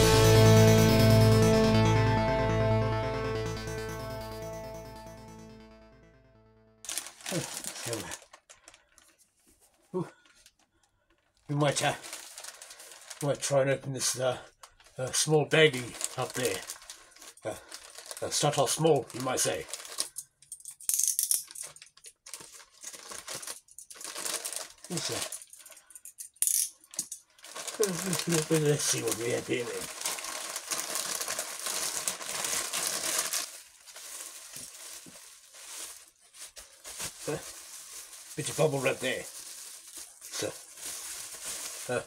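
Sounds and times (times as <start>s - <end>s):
plastic bag crinkling: 6.8s - 13.8s, 14.6s - 20.2s, 21.5s - 26.0s, 26.8s - 42.0s.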